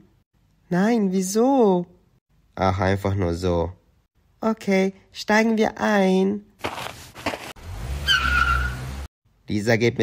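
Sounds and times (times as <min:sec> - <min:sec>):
car engine rumble: 0:07.2 - 0:09.1
tyre squeal: 0:08.0 - 0:08.9.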